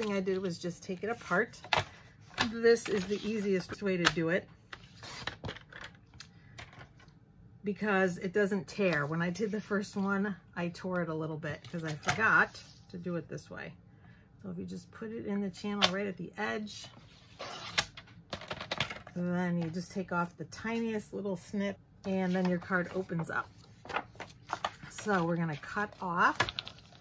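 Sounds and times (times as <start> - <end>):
paper rustling: 22.3 - 27.0.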